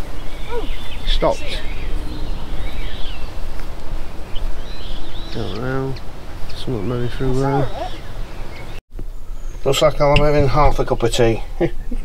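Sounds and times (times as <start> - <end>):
wind buffeting microphone: 0.0 - 8.8
small birds chirping: 0.0 - 11.6
person's voice: 5.4 - 7.9.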